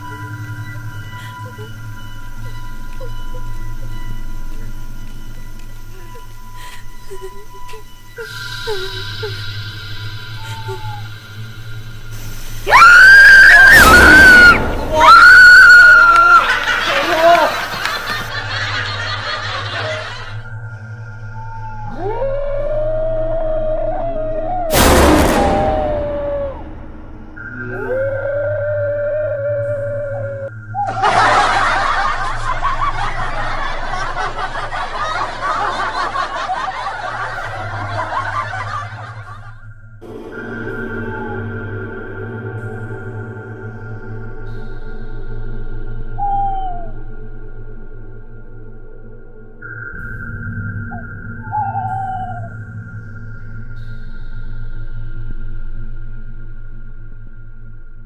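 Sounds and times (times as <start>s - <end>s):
low steady drone: 0.0s - 58.0s
rush of noise: 8.3s - 17.0s.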